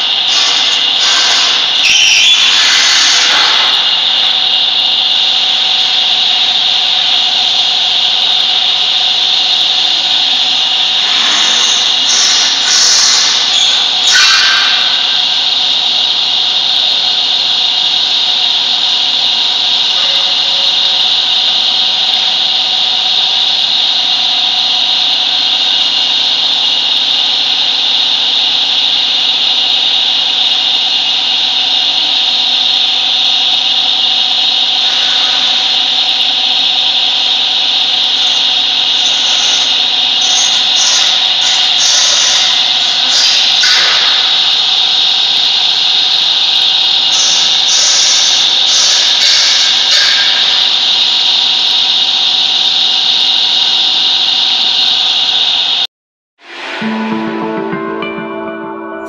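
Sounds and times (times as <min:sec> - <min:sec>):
filling machine running: 0:00.0 - 0:55.0.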